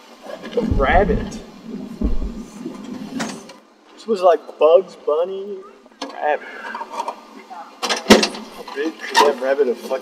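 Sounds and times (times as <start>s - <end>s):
short deep rumble: 0.5s - 2.8s.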